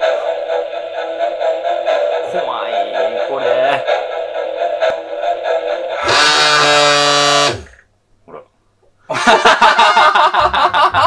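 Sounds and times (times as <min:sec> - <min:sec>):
background music: 0:00.0 - 0:07.8
electronic buzzer: 0:06.0 - 0:07.8
laughter: 0:09.1 - 0:11.0.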